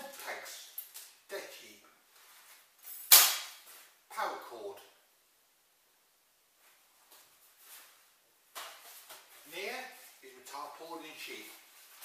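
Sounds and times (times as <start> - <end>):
sharp crack: 3.1 - 3.7
faint rustling: 6.5 - 12.0.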